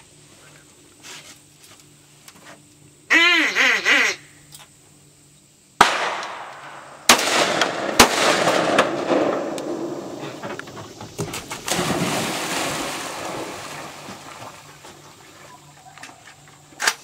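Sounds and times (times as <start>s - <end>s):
duck call quacking: 3.1s - 4.4s
shotgun shots: 5.8s - 10.3s.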